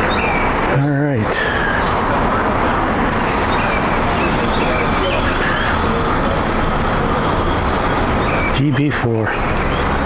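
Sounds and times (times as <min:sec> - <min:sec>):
outdoor background rumble and hiss: 0:00.0 - 0:10.0.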